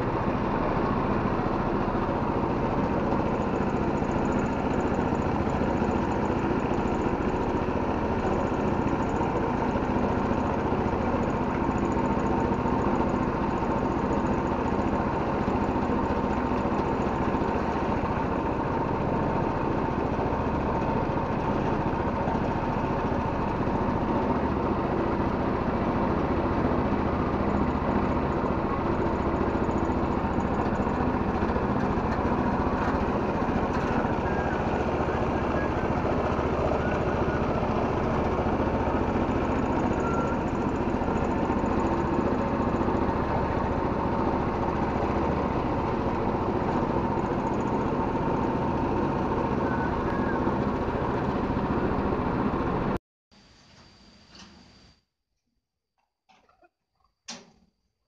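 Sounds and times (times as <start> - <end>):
boat engine running steadily: 0.0 - 53.0.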